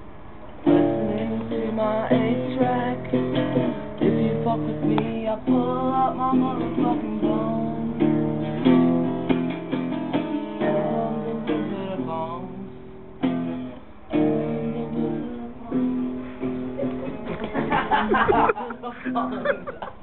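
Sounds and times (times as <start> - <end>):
acoustic guitar strumming: 0.6 - 19.4
person singing: 0.7 - 8.8, 10.6 - 13.0, 14.1 - 19.2.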